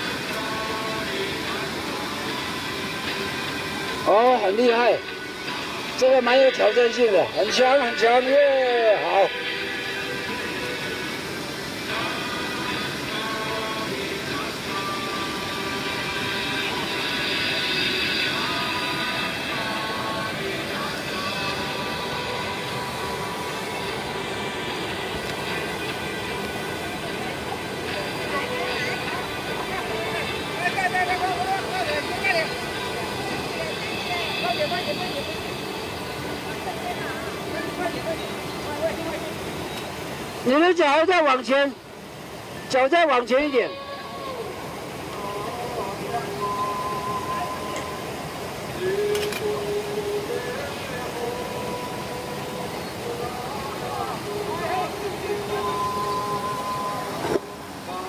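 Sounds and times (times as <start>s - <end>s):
faint voices: 0.0s - 58.0s
stream rushing over boulders: 0.0s - 58.0s.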